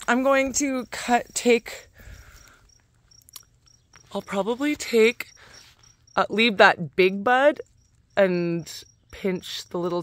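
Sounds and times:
soft rustle: 0:00.0 - 0:06.2
faint cricket chirping: 0:00.0 - 0:10.0.

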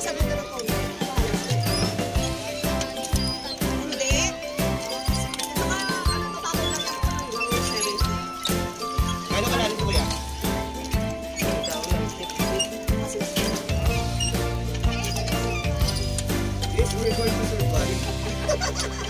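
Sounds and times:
sustained bass: 0:08.0 - 0:19.0.

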